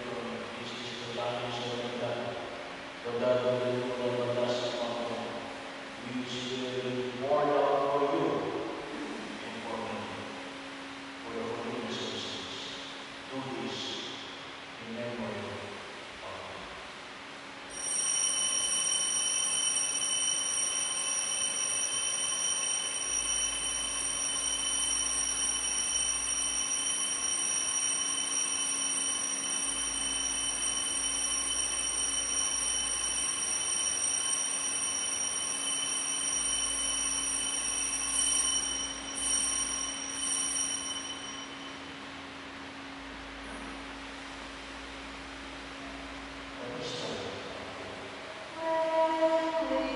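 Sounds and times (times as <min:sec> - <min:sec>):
high-pitched multi-tone ringing: 0:17.7 - 0:42.1.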